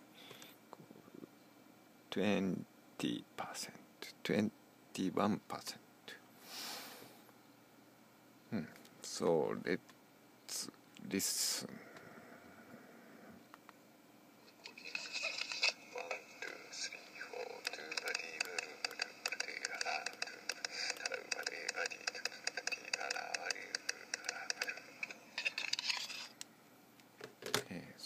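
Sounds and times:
person talking: 0:14.6 - 0:25.1
rapid tapping: 0:17.5 - 0:25.2.

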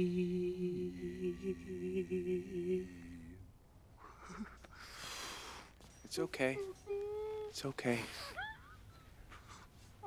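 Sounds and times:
man crying: 0:06.6 - 0:08.9.

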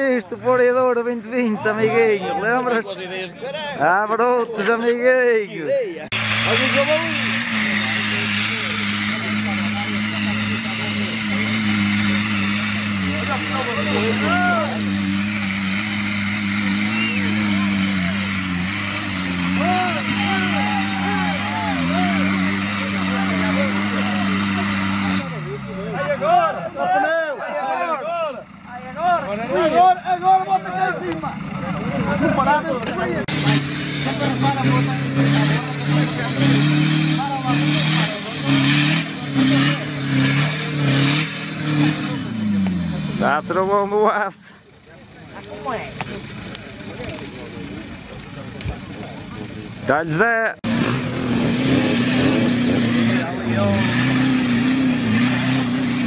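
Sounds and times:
off-road vehicle engine revving: 0:06.0 - 0:56.0
people shouting: 0:13.7 - 0:14.8, 0:19.5 - 0:23.4, 0:26.0 - 0:28.4.

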